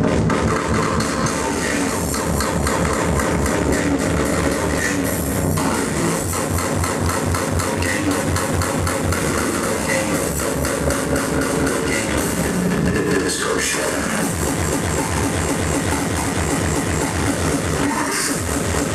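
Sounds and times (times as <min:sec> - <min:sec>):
loud speedcore music: 0:00.0 - 0:18.9
fast kick drum: 0:14.2 - 0:18.9.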